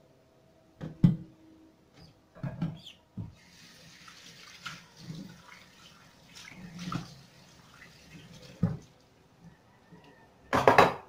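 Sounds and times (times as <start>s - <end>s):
tap water running into a sink: 3.3s - 9.0s.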